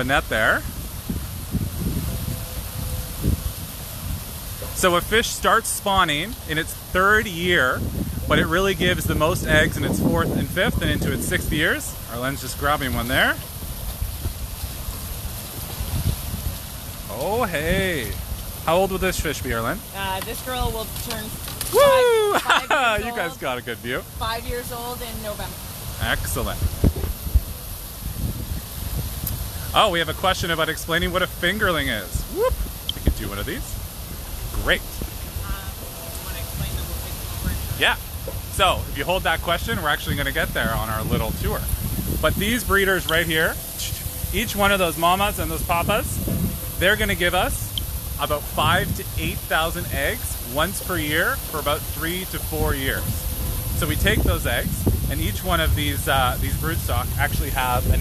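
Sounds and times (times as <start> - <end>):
water rushing through tanks: 0.0 - 58.0
wind buffeting microphone: 0.0 - 58.0.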